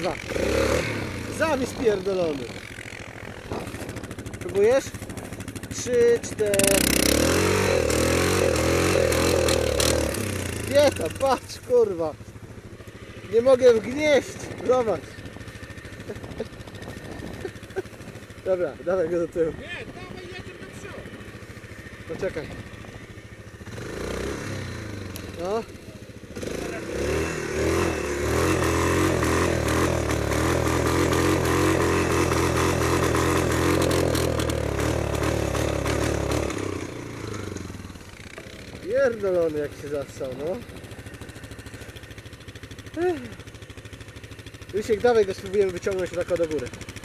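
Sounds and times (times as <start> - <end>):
atv engine idling: 0.0 - 47.0.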